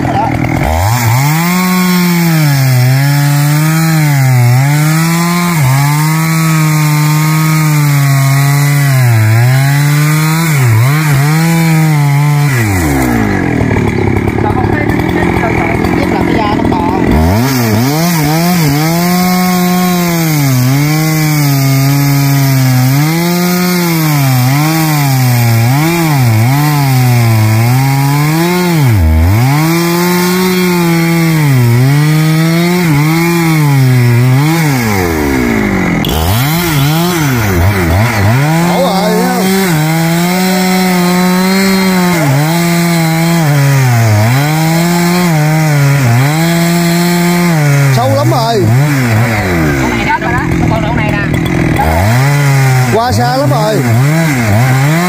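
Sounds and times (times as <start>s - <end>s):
chainsaw cutting tree trunk: 0.0s - 55.0s.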